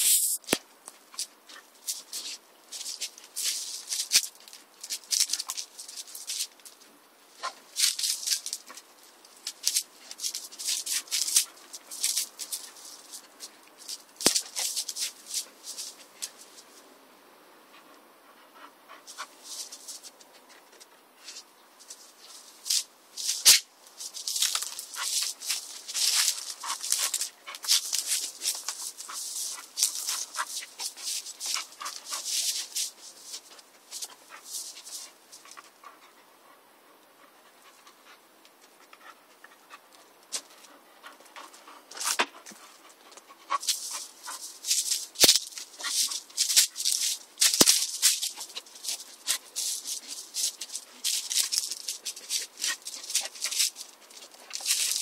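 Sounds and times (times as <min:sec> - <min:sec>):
rustling in plants and dry leaves: 0:00.0 - 0:17.0, 0:19.0 - 0:55.0.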